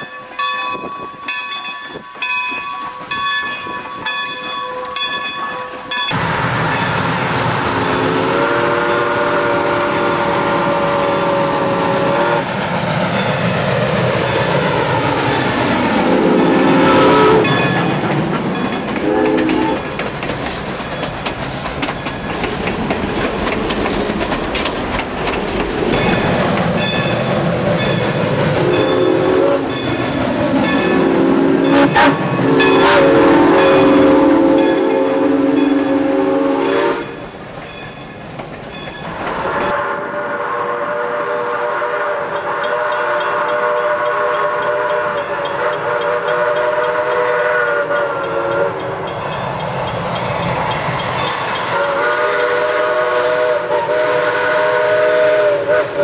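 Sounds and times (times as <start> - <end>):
train coaches rolling by: 0.0 - 56.0
steam whistle blasts: 7.6 - 12.5, 16.0 - 17.7, 19.0 - 19.8, 28.6 - 29.8, 31.0 - 37.2, 39.7 - 48.9, 51.7 - 56.0.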